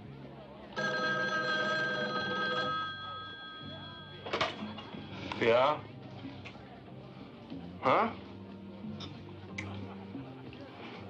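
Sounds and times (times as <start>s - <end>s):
rotary telephone ringing: 0.8s - 5.1s.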